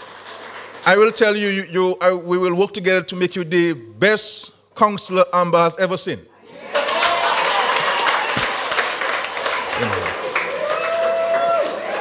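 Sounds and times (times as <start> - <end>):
audience applauding: 0.0 - 1.1, 6.7 - 12.0.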